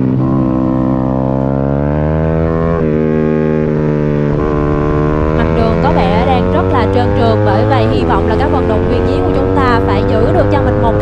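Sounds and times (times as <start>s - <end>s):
motorcycle engine running hard: 0.0s - 11.0s.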